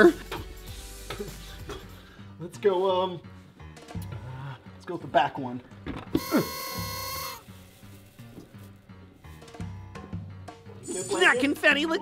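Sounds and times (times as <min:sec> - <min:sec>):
quiet background music with beat: 0:00.0 - 0:12.0.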